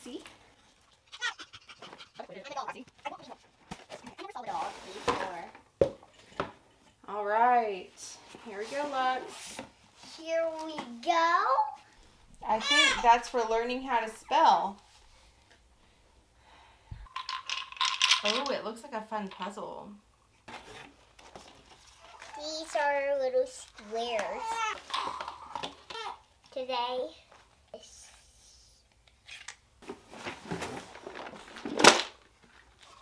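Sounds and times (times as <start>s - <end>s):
toy pieces clicking and rattling: 17.1s - 18.5s
cardboard flaps rustling and scraping: 29.8s - 31.9s.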